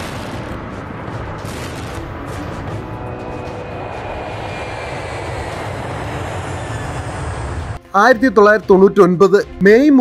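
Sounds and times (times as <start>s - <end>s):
jet engine roar with whine: 0.0s - 7.8s.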